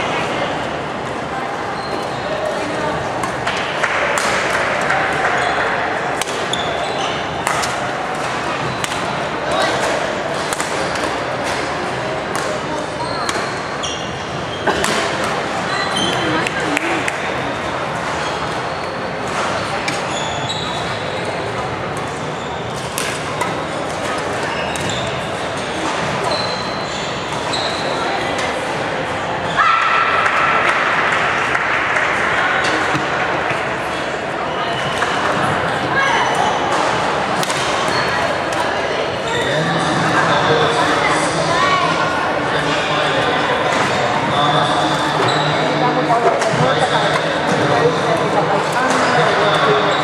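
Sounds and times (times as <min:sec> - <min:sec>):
chatter of people echoing: 0:00.0 - 0:50.0
shoes squeaking on court: 0:01.7 - 0:02.4, 0:06.4 - 0:07.9, 0:12.4 - 0:28.2, 0:37.6 - 0:41.3, 0:43.7 - 0:50.0
racket striking shuttlecock: 0:07.4 - 0:07.9.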